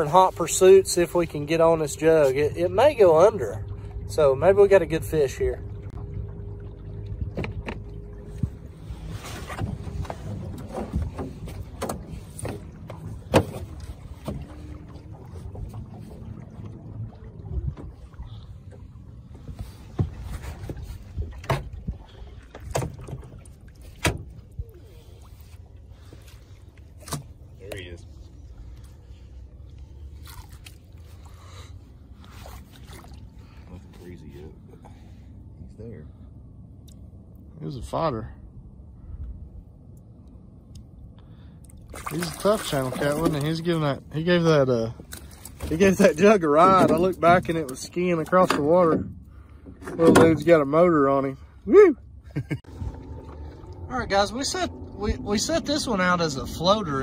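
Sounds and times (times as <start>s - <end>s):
water splashing: 0.0s - 35.2s, 41.4s - 51.6s, 52.4s - 57.0s
outboard motor running low: 0.8s - 26.2s, 52.1s - 57.0s.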